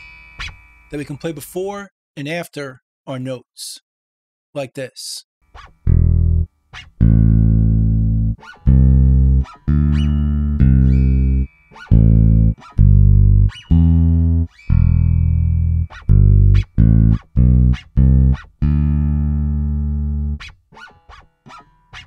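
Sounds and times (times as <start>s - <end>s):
string scratch clicks: 5.6s - 22.0s
electric bass low notes: 5.9s - 20.4s.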